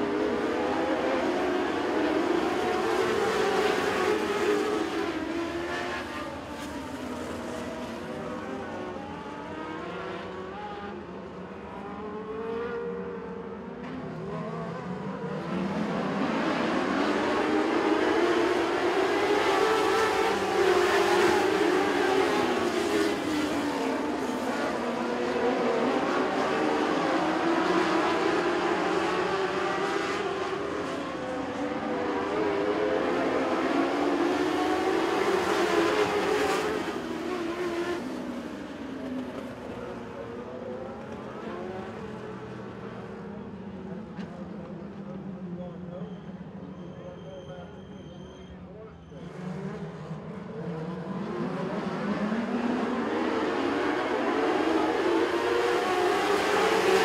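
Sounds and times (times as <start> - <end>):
race car engines: 0.0 - 57.0.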